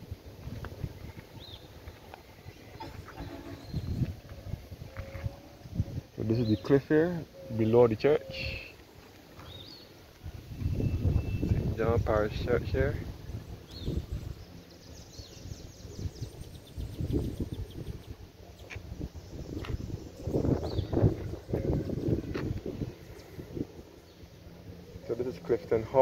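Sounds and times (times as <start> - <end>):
low rumble on microphone: 0.0 - 6.7, 9.5 - 25.9
faint bird chirps: 2.4 - 5.6, 10.6 - 11.6.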